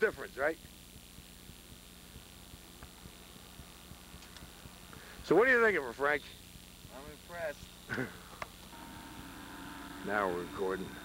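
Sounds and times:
distant snowmobile engine drone: 0:07.9 - 0:11.0.

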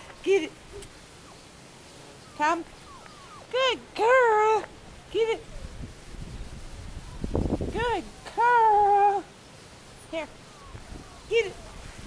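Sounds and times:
puppy whining cry: 0:01.2 - 0:03.6, 0:10.4 - 0:11.8.

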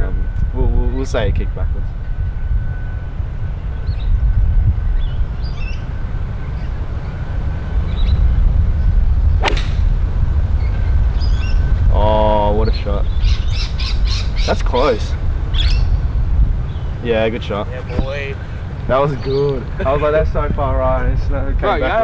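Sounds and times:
golf club striking ball: 0:09.4 - 0:10.0.

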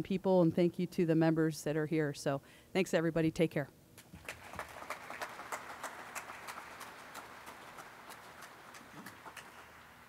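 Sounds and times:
audience applause: 0:04.2 - 0:10.0.

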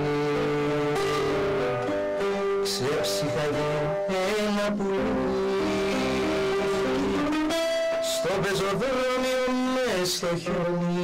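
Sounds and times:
bouzouki playing held notes: 0:00.0 - 0:09.1.

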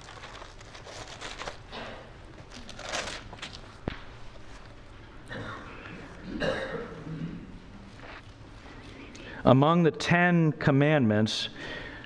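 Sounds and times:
man clearing his throat: 0:05.3 - 0:07.6.

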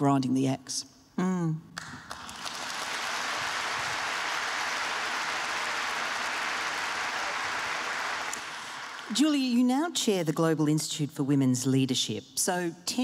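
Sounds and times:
audience applauding: 0:01.8 - 0:09.2.

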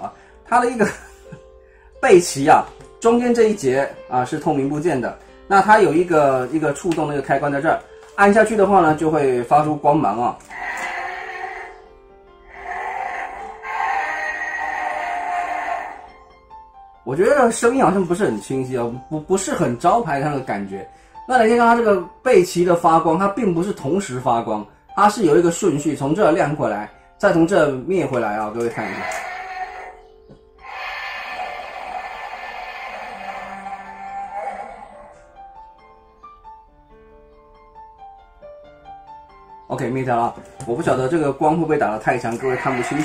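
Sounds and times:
electronic toy monster roar: 0:10.5 - 0:11.9, 0:12.5 - 0:16.1, 0:28.7 - 0:30.0, 0:30.6 - 0:35.3, 0:42.4 - 0:43.0.

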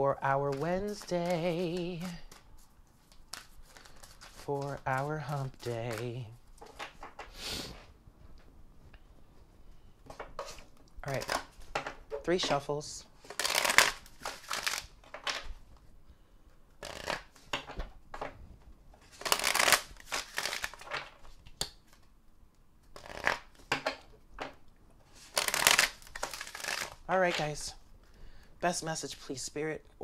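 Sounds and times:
cards rustling and tapping: 0:00.4 - 0:07.4, 0:10.0 - 0:15.9, 0:16.8 - 0:22.1, 0:22.9 - 0:27.6
cards shuffled by hand: 0:00.4 - 0:07.4, 0:10.1 - 0:15.9, 0:16.8 - 0:18.3, 0:19.0 - 0:22.1, 0:22.9 - 0:23.8, 0:25.1 - 0:27.7.

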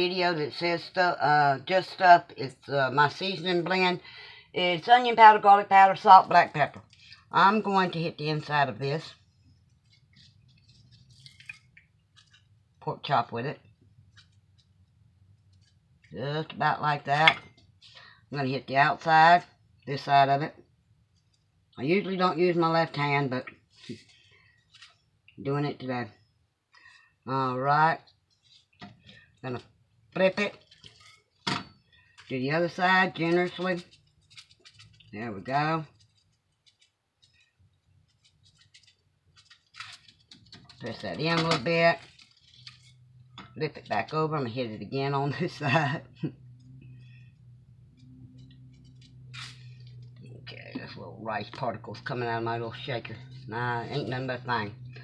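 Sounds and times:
spice shaker rattling: 0:33.5 - 0:35.2, 0:35.8 - 0:40.8.

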